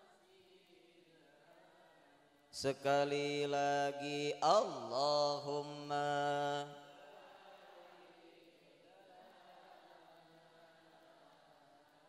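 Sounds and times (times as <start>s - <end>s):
man chanting through a microphone: 2.6s - 7.0s.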